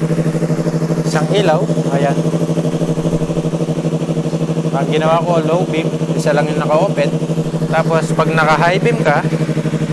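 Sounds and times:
motorcycle engine idling: 0.0 - 9.9.

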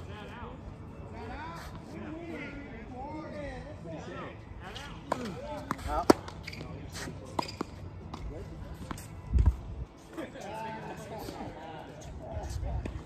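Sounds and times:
tennis ball hits and bounces: 5.1 - 9.0.

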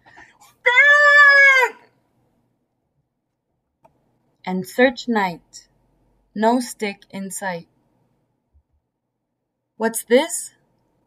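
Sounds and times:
person calling out: 0.6 - 1.8.

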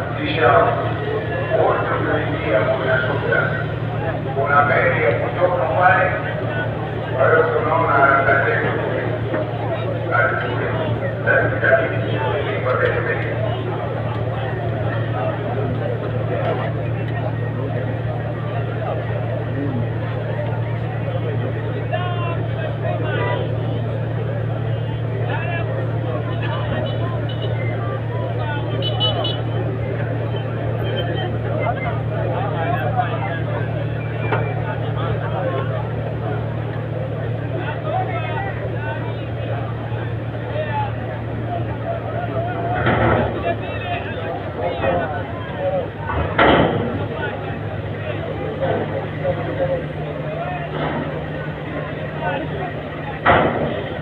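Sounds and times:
large crowd talking and calling: 0.0 - 54.0
low engine hum: 0.0 - 54.0.

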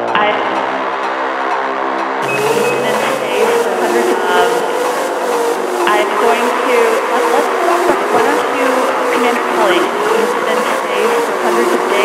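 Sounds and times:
fast high ticking: 0.0 - 12.0
wavering synth tone: 1.8 - 12.0.

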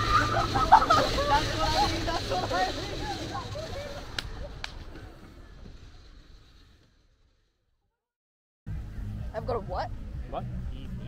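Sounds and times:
people laughing: 0.0 - 4.7
people talking: 0.0 - 5.2.

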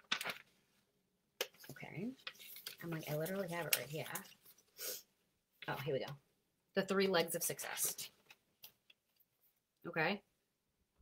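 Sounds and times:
paper sheet handled: 0.0 - 0.6, 1.5 - 4.7.

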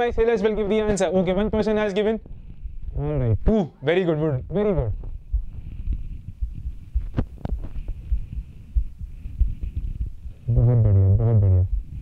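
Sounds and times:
faint steady hiss: 0.0 - 12.0
low thuds and rumble on microphone: 2.2 - 3.5, 4.4 - 12.0.

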